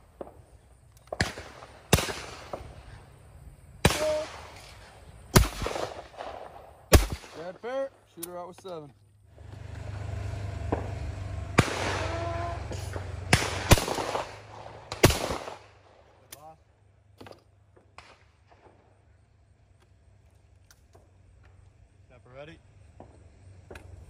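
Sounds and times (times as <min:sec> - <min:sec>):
shotgun firing: 0:01.1 - 0:02.7, 0:03.8 - 0:04.7, 0:05.3 - 0:07.6, 0:10.6 - 0:16.0.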